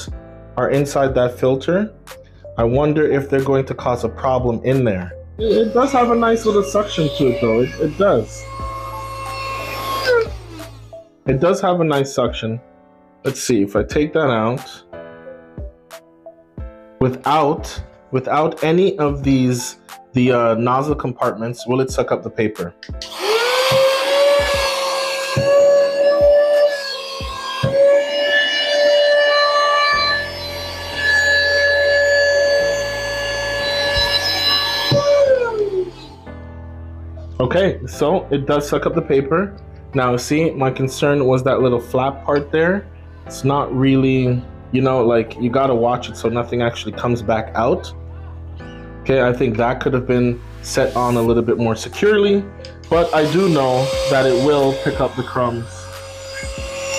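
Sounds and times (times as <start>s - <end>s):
handheld vacuum motor whining: 5.4s - 11.1s, 23.0s - 36.4s, 50.8s - 51.4s, 52.6s - 56.9s.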